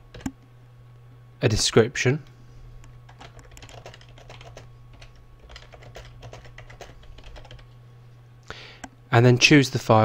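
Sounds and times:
low background hum: 0.0s - 10.0s
typing on keyboard: 3.1s - 7.7s.

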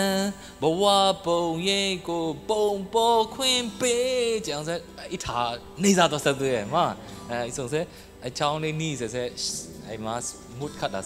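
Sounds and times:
man singing slow melody: 0.0s - 6.2s.

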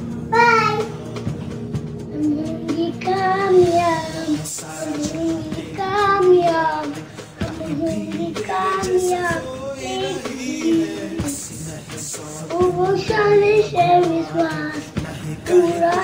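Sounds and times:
young boy singing: 0.3s - 1.0s, 2.1s - 16.0s.

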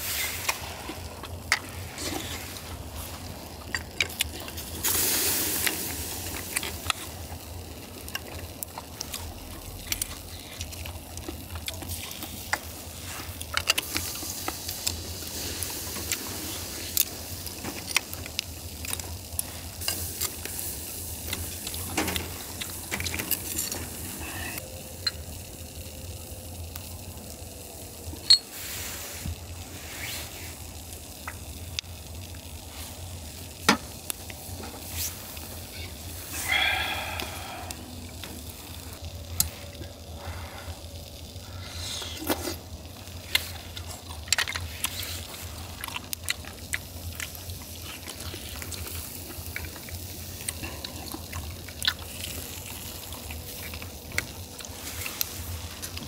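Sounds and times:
shellfish sizzling on grill: 0.0s - 56.0s.

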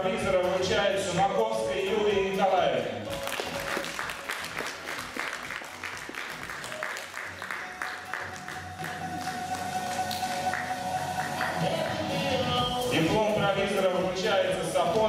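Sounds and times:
background music: 0.0s - 15.0s
crowd applauding: 3.1s - 12.3s
held musical tone: 3.1s - 14.7s.

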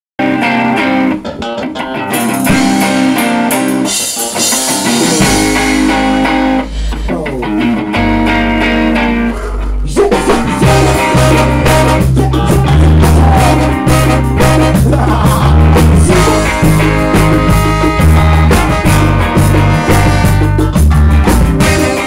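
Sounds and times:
drums: 0.2s - 22.0s
electric guitar: 0.2s - 22.0s
deep bass line: 2.4s - 22.0s.

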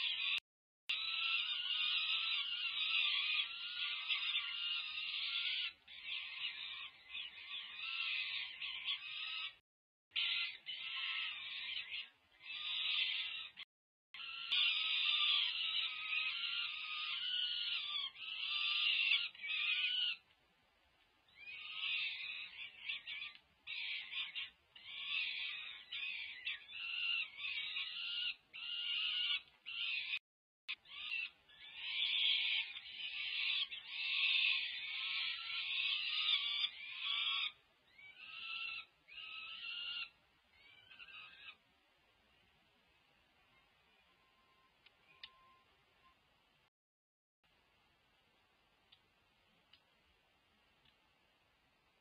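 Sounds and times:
falcon chicks wailing calls: 0.0s - 9.6s, 10.2s - 13.6s, 14.2s - 20.2s, 21.3s - 41.6s.

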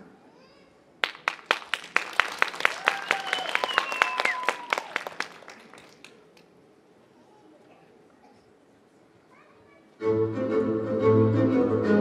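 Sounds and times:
audience applause: 1.0s - 6.4s.

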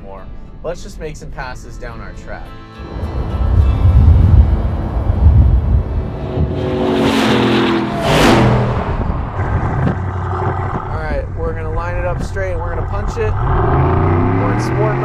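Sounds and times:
car engine passing by: 2.8s - 10.9s, 13.4s - 15.0s.

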